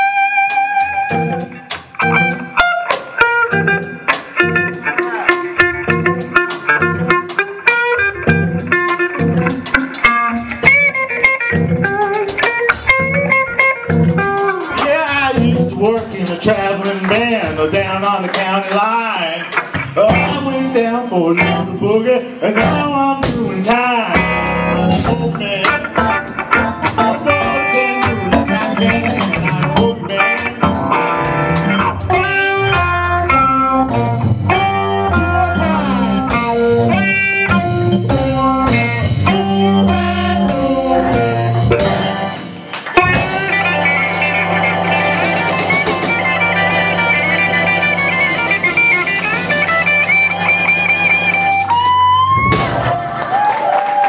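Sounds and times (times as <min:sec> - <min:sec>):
electric guitar: 0:00.0 - 0:54.0
live blues band playing: 0:00.0 - 0:54.0
person singing lead vocal: 0:04.8 - 0:05.6, 0:14.6 - 0:31.0, 0:35.0 - 0:42.2.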